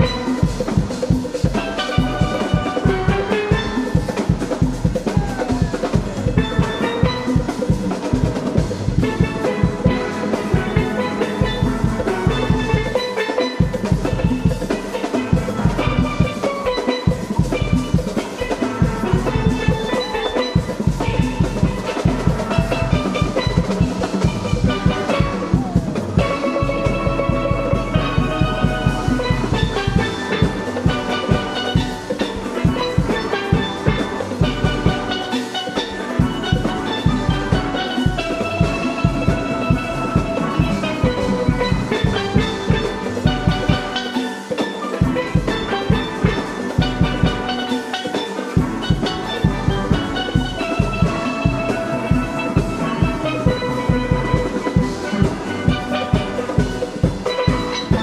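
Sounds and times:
congas: 0.0 - 58.0
drum kit beat: 0.0 - 58.0
steel pans playing melody: 0.0 - 58.0
bass: 17.1 - 35.1.

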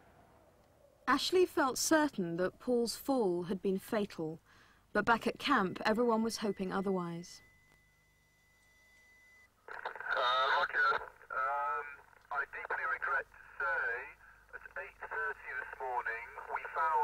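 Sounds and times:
faint steady high tone: 0.0 - 14.0
tinny voice over two-way radio: 9.7 - 17.0.

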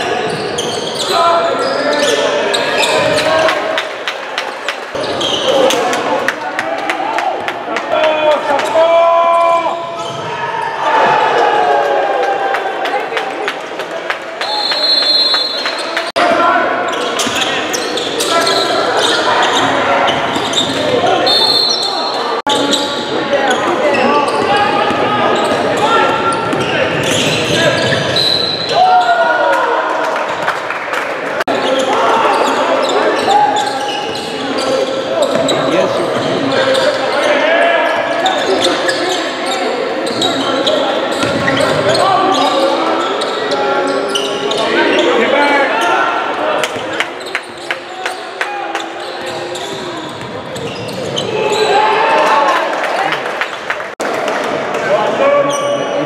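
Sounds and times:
crowd and player voices: 0.0 - 56.0.

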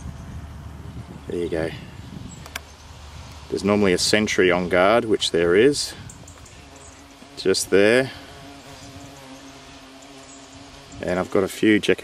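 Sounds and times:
hornets buzzing: 0.0 - 12.0.

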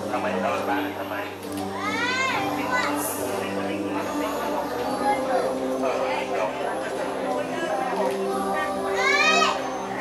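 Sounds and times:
crowd voices: 0.0 - 10.0
child's high voice: 1.8 - 3.0, 8.9 - 9.6.

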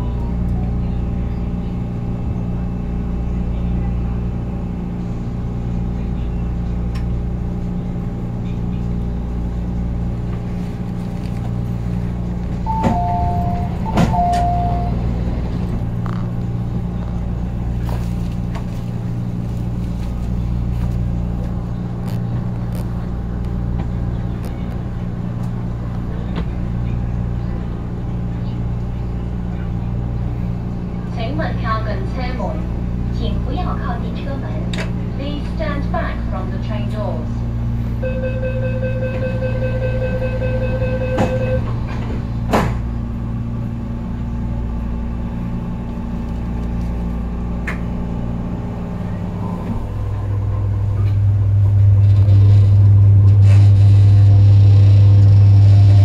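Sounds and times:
train electrical hum: 0.0 - 56.0.

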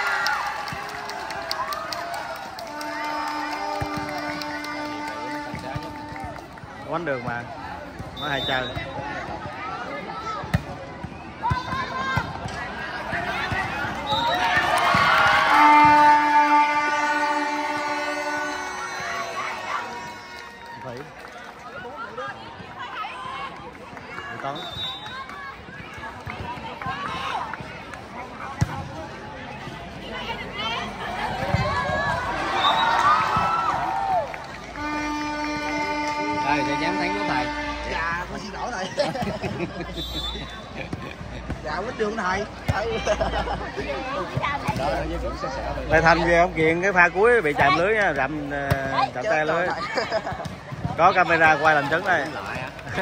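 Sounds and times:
crowd cheering: 0.0 - 10.4, 11.1 - 53.0
spectators shouting and chattering: 0.0 - 53.0.

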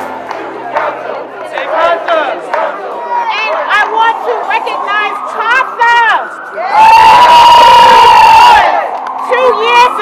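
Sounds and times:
crowd cheering and shouting: 0.1 - 10.0.

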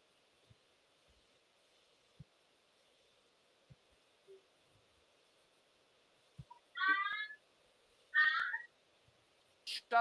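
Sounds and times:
high-pitched animal cry: 6.8 - 7.4, 8.2 - 8.7.

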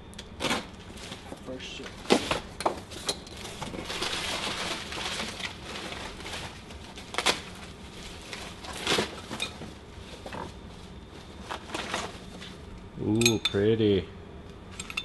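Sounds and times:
packing material rustling: 0.4 - 12.7.

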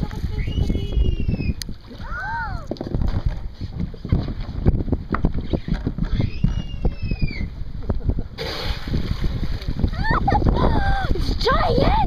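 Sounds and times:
water noise: 0.0 - 12.0
wind buffeting microphone: 0.0 - 12.0
high whistle-like tone: 6.1 - 7.5.

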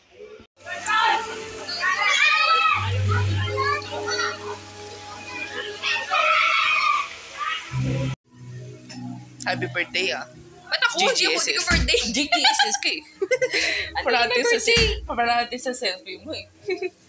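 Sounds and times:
children shouting and playing: 0.6 - 8.2
background music with bass: 2.7 - 5.9, 7.8 - 12.3.

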